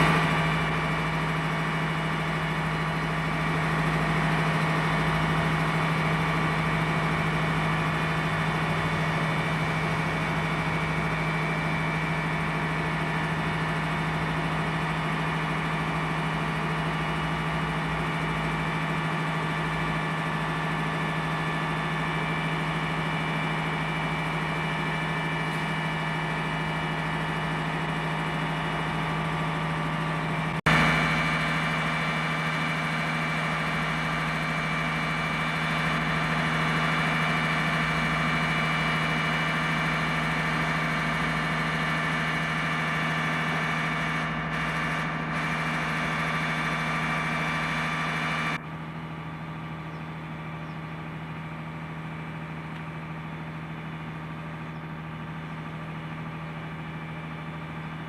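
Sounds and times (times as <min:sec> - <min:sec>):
fire engine motor droning: 0:00.0 - 0:58.0.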